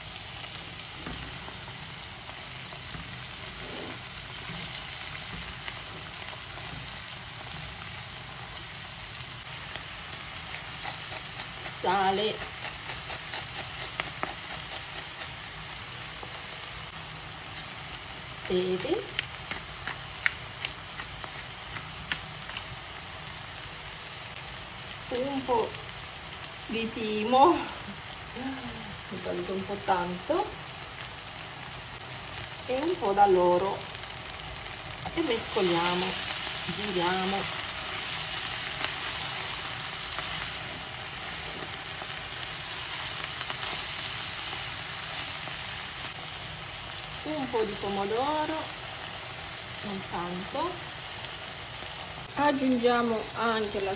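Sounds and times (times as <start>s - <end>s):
vegetables sizzling in a pan: 0.0s - 53.9s.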